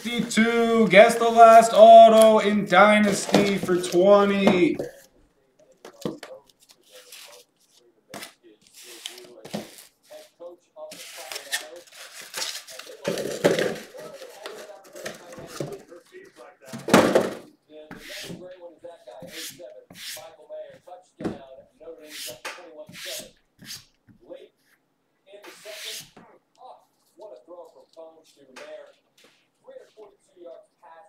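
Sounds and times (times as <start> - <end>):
indistinct talking: 0.0 - 4.9.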